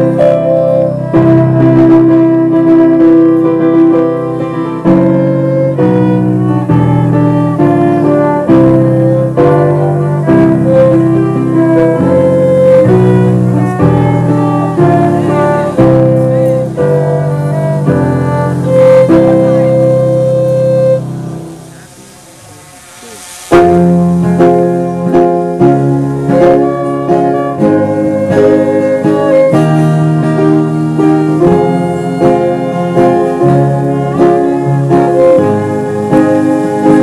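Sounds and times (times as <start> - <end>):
violin and keyboard playing: 0.0 - 37.0.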